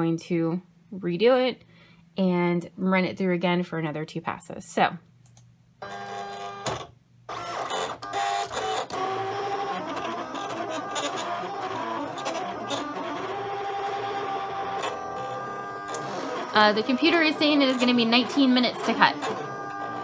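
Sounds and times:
cutting machine motors whirring: 5.8 - 20.0.

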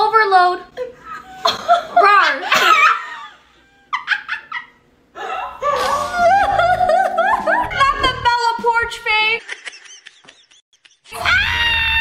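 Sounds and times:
high-pitched laughter: 1.0 - 8.3.

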